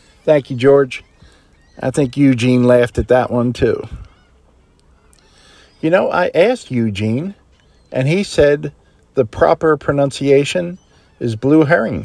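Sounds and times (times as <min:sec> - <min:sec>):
man talking: 0:00.0 - 0:04.1, 0:05.8 - 0:12.0
faint outdoor background: 0:00.0 - 0:12.0.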